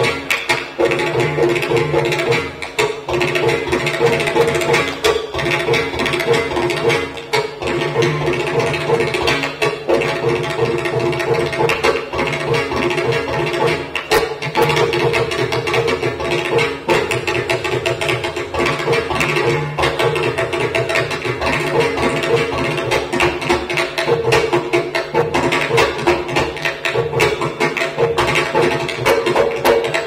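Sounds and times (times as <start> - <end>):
rapid hand-drum strokes: 0.0 - 30.0.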